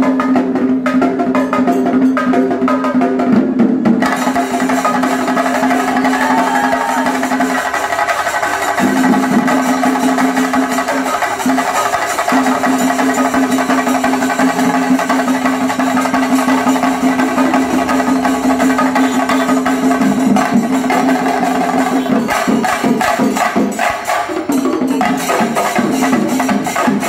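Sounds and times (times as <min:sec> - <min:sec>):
fast dense drumming: 0:02.2 - 0:27.0.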